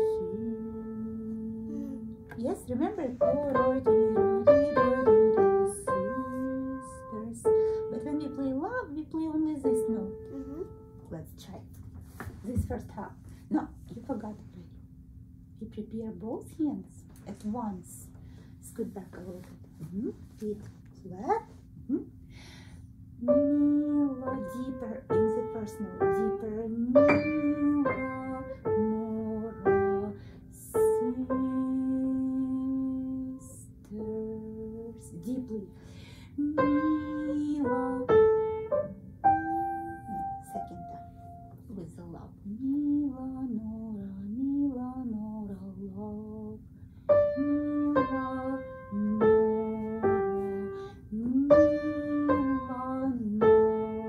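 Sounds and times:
person singing along: 0:00.0 - 0:02.3, 0:03.2 - 0:07.6, 0:36.4 - 0:40.6, 0:47.2 - 0:54.0
piano melody: 0:00.0 - 0:08.9, 0:09.5 - 0:11.2, 0:23.2 - 0:35.7, 0:36.4 - 0:41.6, 0:47.1 - 0:54.0.

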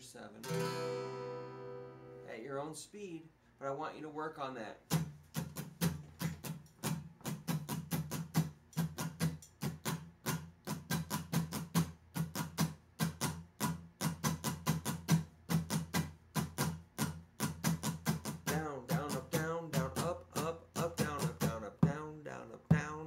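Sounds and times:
acoustic guitar strumming chords: 0:00.4 - 0:02.6, 0:04.9 - 0:23.0.

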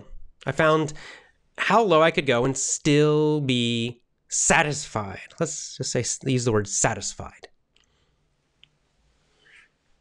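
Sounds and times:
faint room hum: 0:00.0 - 0:10.0
soft breath: 0:07.8 - 0:08.4, 0:09.1 - 0:10.0.

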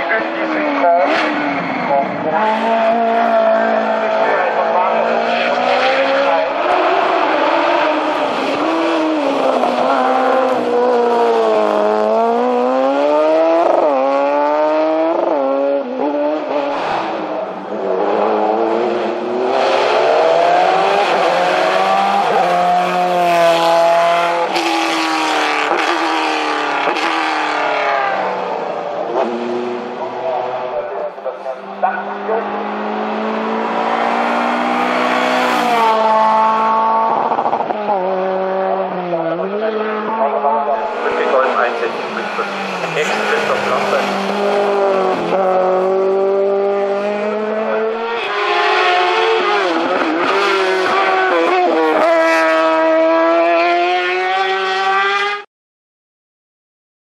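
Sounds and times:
racing car engines at full throttle: 0:00.0 - 0:55.5.

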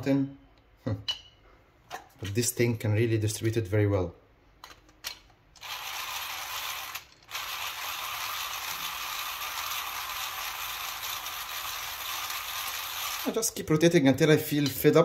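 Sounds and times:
plastic gears turning: 0:05.6 - 0:13.4.

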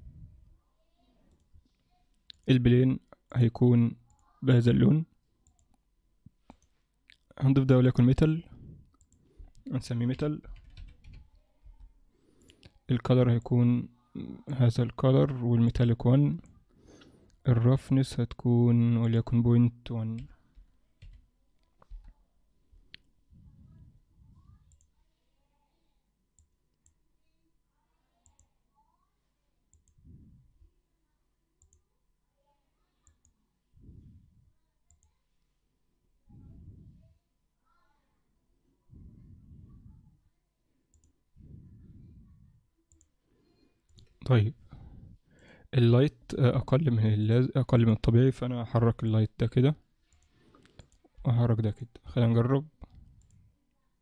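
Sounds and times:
computer mouse clicks: 0:24.7 - 0:25.0, 0:28.2 - 0:28.5, 0:34.9 - 0:35.2, 0:42.9 - 0:43.1.

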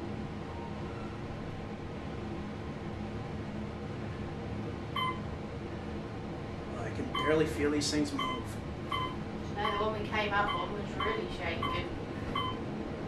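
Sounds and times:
elevator hum and rush: 0:00.0 - 0:13.0
short beep: 0:05.0 - 0:05.2, 0:07.2 - 0:07.4, 0:08.2 - 0:09.8, 0:12.4 - 0:12.6.

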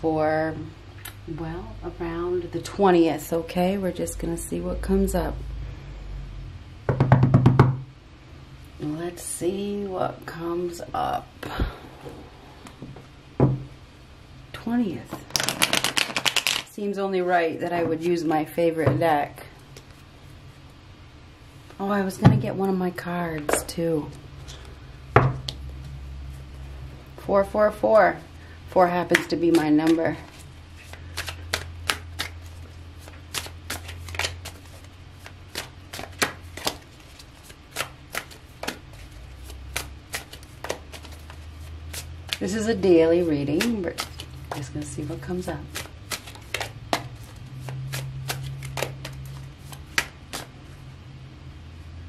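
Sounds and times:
steady low hum: 0:00.0 - 0:52.0
cards being shuffled by hand: 0:15.1 - 0:16.7, 0:29.0 - 0:50.7.

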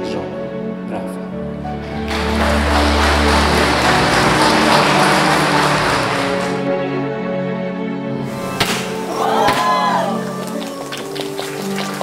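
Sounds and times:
background music: 0:00.0 - 0:12.0
congregation applauding: 0:01.8 - 0:06.8, 0:08.8 - 0:12.0.

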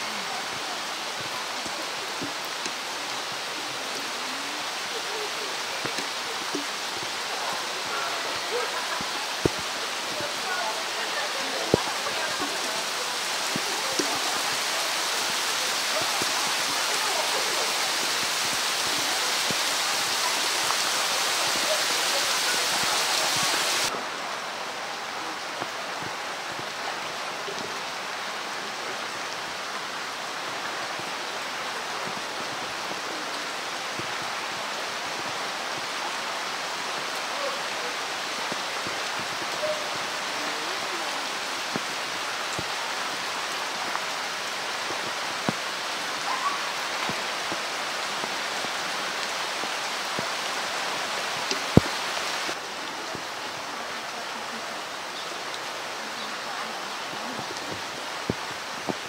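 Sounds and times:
heavy rain on pool water: 0:00.0 - 0:59.0.

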